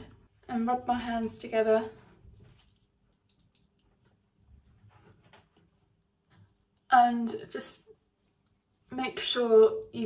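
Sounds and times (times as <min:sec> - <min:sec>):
hands rubbing gel: 0:02.4 - 0:05.9.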